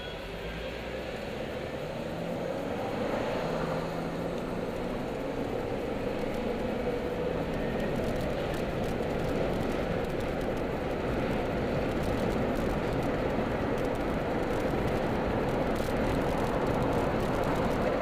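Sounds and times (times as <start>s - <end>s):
car engine and tyre noise: 0.0s - 18.0s.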